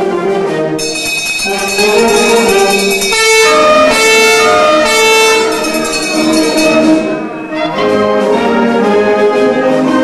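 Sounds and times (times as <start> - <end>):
brass band playing held chords: 0.3 - 10.0.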